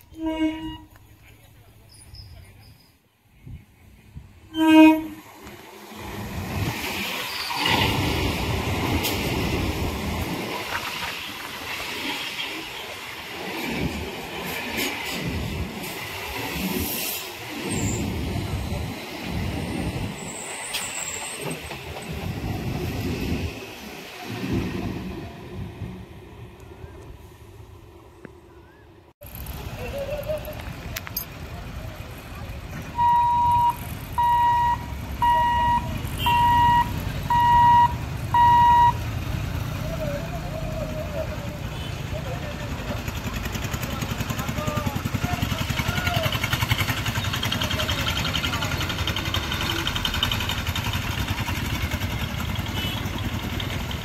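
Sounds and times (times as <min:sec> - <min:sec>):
traffic noise: 0:00.0 - 0:54.0
electric train rumbling past: 0:03.8 - 0:28.6, 0:31.5 - 0:54.0
short vehicle horn beeps: 0:33.0 - 0:38.9.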